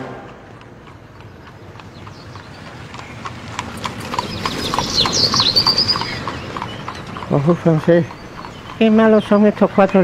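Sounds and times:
horse hooves clip-clopping: 0.0s - 10.0s.

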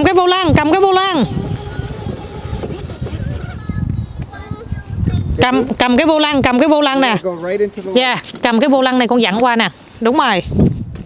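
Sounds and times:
wind rumbling on microphone: 0.0s - 11.0s
toy ride-on car running: 0.9s - 3.7s.

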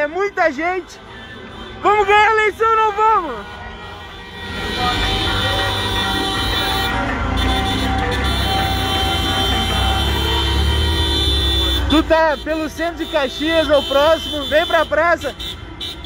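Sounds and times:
car engines rumbling: 0.0s - 16.0s
vehicle horns honking: 0.0s - 16.0s.

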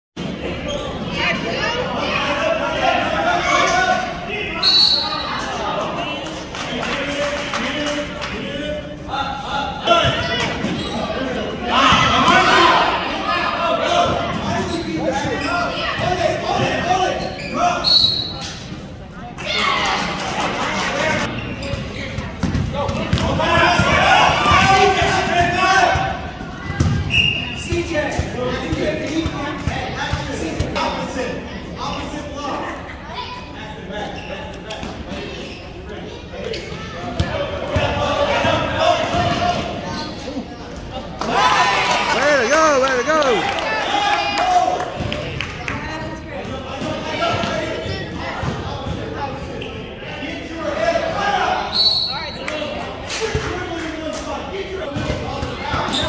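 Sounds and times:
voices echoing in hall: 0.2s - 56.0s
basketball bouncing on gym floor: 21.7s - 24.7s.

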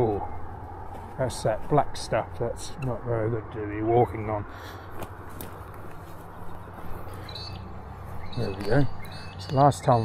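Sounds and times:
footsteps on muddy bank: 4.9s - 9.1s.

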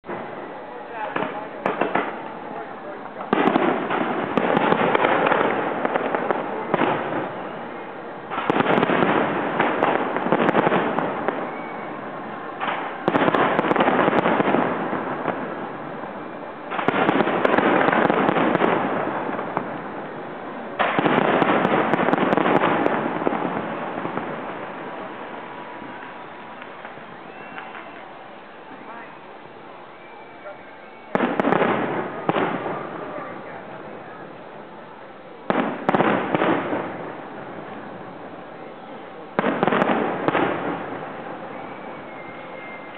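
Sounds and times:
firework crackling: 0.0s - 42.9s
firework shells bursting: 20.8s - 25.0s.

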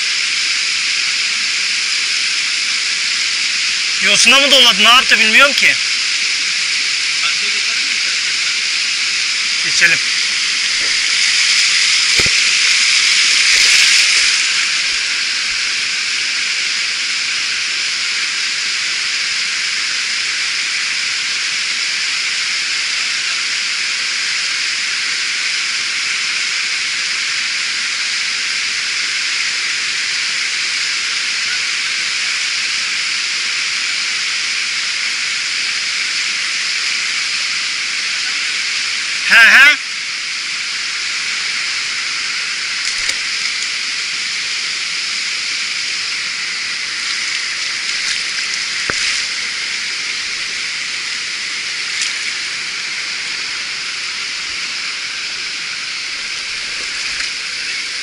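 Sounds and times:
water rushing over rocks: 0.1s - 58.0s.

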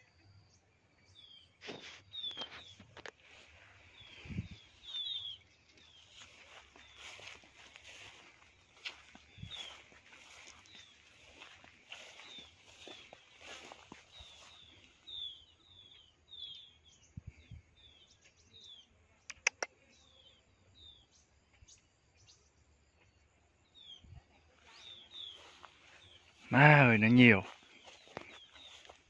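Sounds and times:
small birds chirping: 0.0s - 29.0s.

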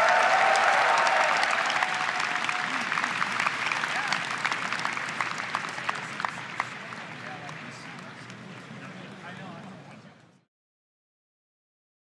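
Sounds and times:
voices cheering: 0.0s - 4.5s
audience applauding: 0.0s - 8.4s.

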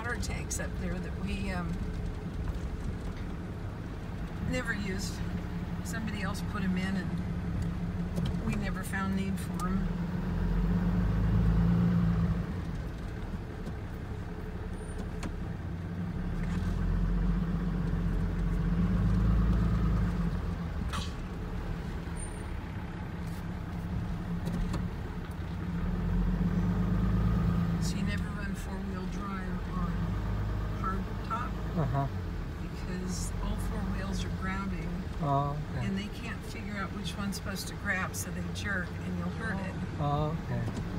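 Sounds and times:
road noise: 0.0s - 40.9s
truck engine drone: 0.0s - 40.9s.

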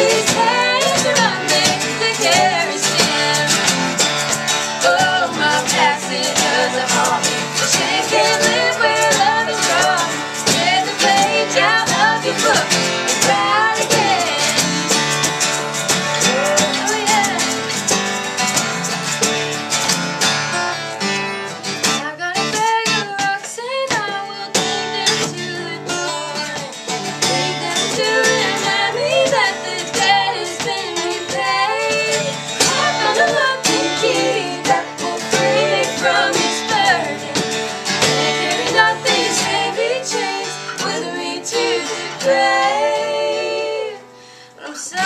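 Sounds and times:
woman singing: 0.0s - 4.1s, 4.8s - 15.0s, 16.2s - 17.8s, 22.0s - 45.0s
acoustic guitars strumming: 0.0s - 45.0s.

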